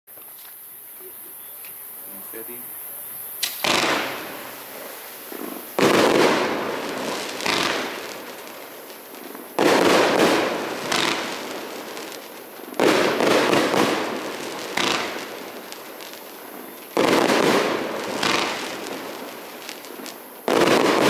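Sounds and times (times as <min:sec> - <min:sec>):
firework stars bursting: 0:00.1 - 0:21.0
firework cake launches: 0:00.2 - 0:21.0.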